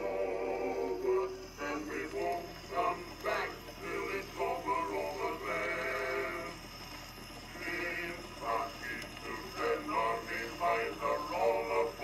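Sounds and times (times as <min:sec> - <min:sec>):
old phonograph recording of men singing: 0:00.0 - 0:12.0.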